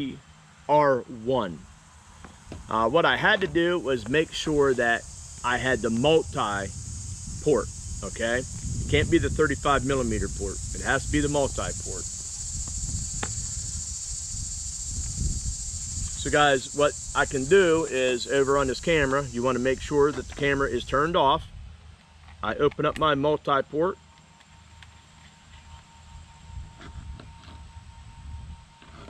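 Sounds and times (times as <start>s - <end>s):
insects chorus: 0.0s - 29.0s.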